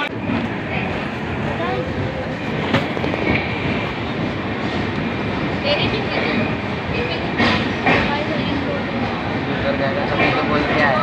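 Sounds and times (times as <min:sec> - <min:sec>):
faint voices: 0:00.0 - 0:11.0
train coach rumbling: 0:00.0 - 0:11.0.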